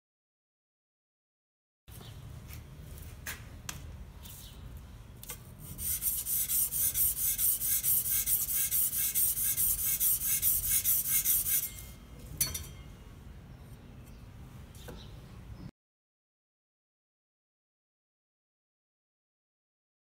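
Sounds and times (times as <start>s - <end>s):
metal blade scraping sandpaper: 5.6s - 12.0s.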